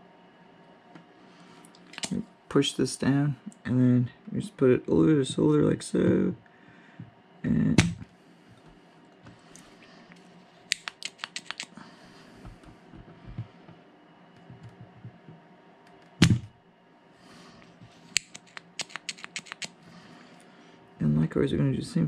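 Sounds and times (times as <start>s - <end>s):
desoldering pump snap: 7.8s - 8.0s, 10.7s - 11.7s, 16.2s - 16.5s
tools clicking and tapping: 10.7s - 11.7s, 18.1s - 19.7s.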